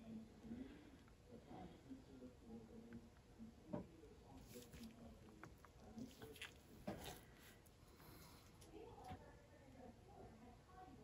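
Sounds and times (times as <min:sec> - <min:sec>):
faint handling noises: 0:04.3 - 0:09.3.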